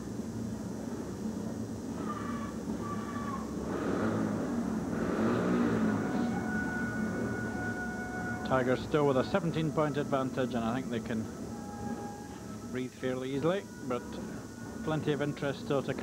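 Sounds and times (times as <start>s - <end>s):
motorcycle engines revving: 2.6s - 11.5s.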